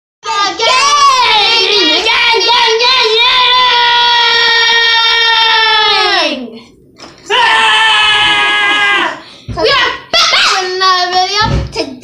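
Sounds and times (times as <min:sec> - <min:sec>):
girls singing loudly: 0:00.2 - 0:06.5.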